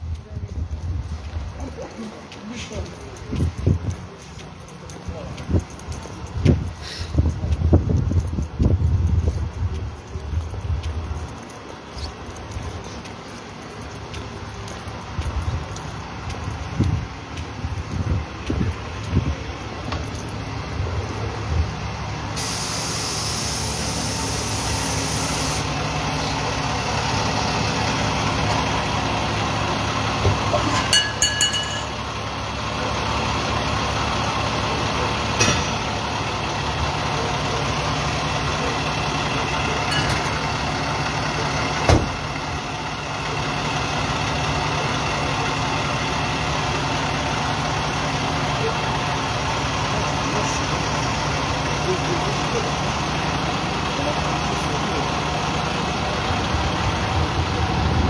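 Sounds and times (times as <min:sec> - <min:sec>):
diesel engine idling: 0:00.0 - 0:58.0.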